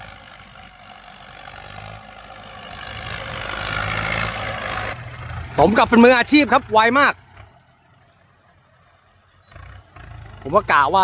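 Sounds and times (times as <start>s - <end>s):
tractor engine rumbling: 0.0s - 11.0s.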